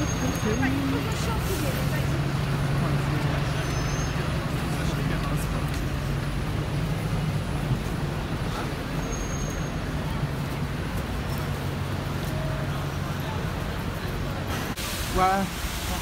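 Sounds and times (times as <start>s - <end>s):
bus engine low drone: 0.0s - 16.0s
street noise: 0.0s - 16.0s
brief high squeaks: 9.0s - 9.7s.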